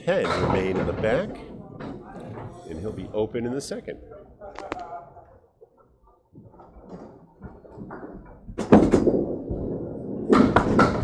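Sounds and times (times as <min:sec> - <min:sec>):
bowling ball and pins clattering: 0:00.1 - 0:02.6, 0:06.5 - 0:11.0.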